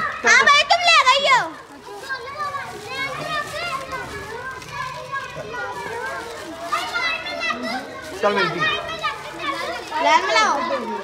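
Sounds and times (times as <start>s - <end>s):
children chattering: 0.0s - 11.0s
children shouting: 0.0s - 11.0s.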